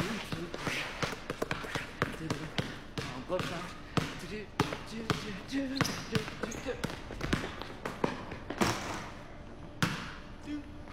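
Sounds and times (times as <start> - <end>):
basketball bouncing on concrete: 0.0 - 9.1, 9.8 - 10.2.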